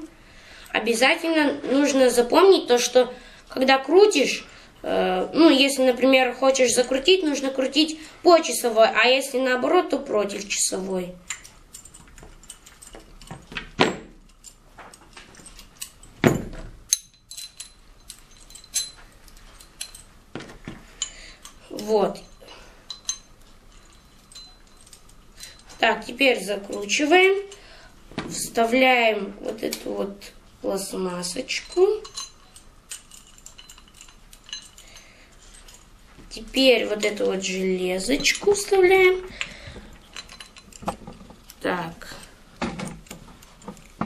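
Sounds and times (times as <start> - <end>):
small steel parts clinking: 11.2 - 27.8, 30.8 - 44.0.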